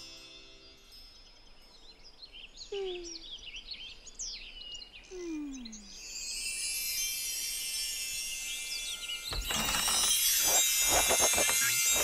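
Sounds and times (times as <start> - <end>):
bird chirps: 0.0 - 6.4, 8.4 - 12.0
bright magical shimmer: 5.9 - 12.0.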